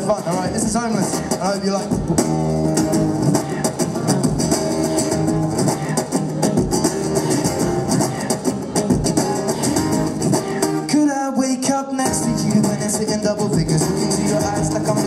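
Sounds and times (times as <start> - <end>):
percussive beat: 0.0 - 10.9, 12.0 - 15.0
acoustic guitar strumming chords: 0.0 - 15.0.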